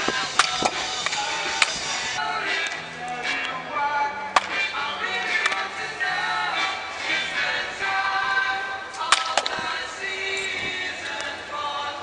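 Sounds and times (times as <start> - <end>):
bat hitting baseballs: 0.0 - 1.9, 9.0 - 9.7
music playing: 0.0 - 12.0.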